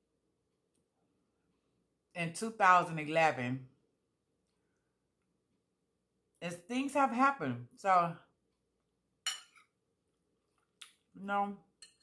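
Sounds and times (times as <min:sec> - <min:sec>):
fork clinking on a plate: 0:09.2 - 0:09.7, 0:11.8 - 0:12.0.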